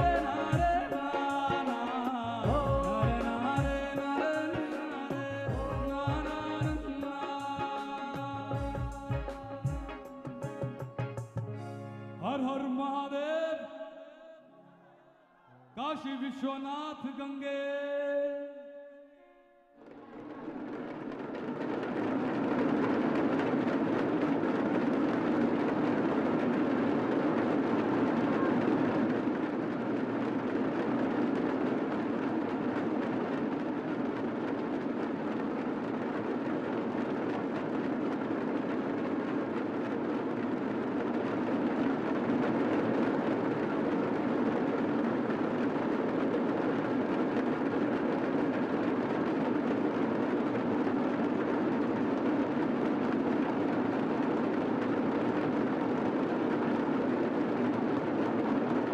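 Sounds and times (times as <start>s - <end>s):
hand drums rolling: 0.0s - 11.7s.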